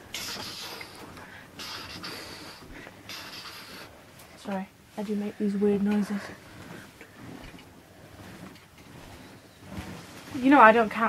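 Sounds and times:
hand moving across bedsheet: 5.0 - 10.9
plush toy rustling: 6.1 - 11.0.

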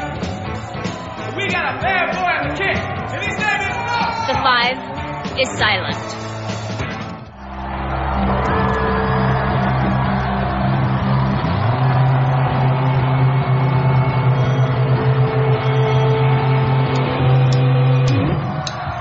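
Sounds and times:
electric guitar chords: 4.4 - 18.7.

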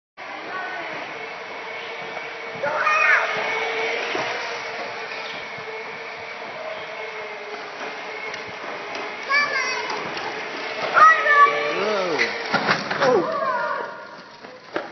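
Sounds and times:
electric scooter motor whine: 0.2 - 14.9
scooter rolling on concrete: 0.2 - 14.9
children shouting: 2.6 - 4.2, 10.8 - 12.3, 13.0 - 14.2.

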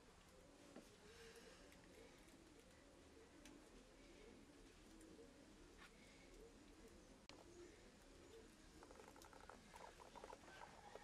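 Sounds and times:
faint rapid high-pitched chirping: 6.2 - 11.0.

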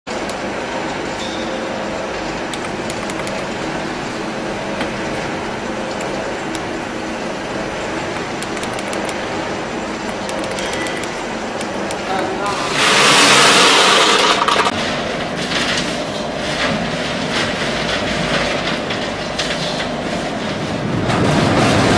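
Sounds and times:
faint hum tones: 0.1 - 13.8
factory machinery running: 0.1 - 21.9.

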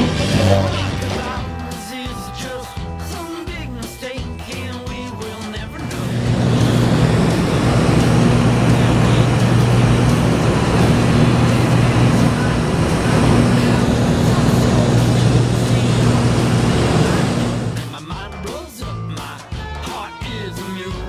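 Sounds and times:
propeller aircraft engine drone: 0.0 - 1.4, 5.8 - 17.9
rushing noise: 5.8 - 18.0.

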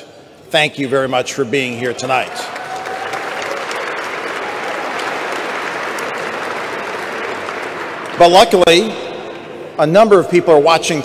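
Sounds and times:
audience applauding: 2.0 - 8.6.

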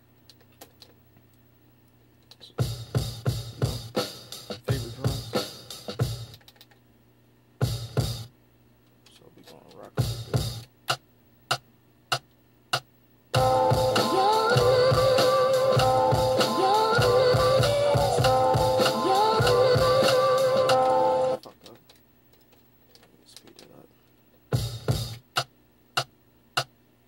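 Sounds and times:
sampled melody with bending notes: 13.4 - 21.4.

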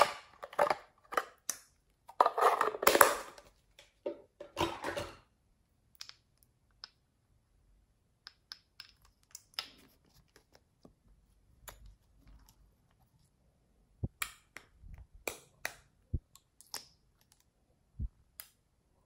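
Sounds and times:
crackly plastic rubbing and scraping: 2.0 - 3.5.

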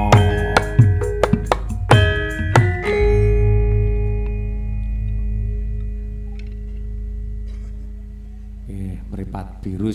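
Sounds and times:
gamelan metallic tones: 0.0 - 9.9
deep gong note: 2.8 - 9.9.

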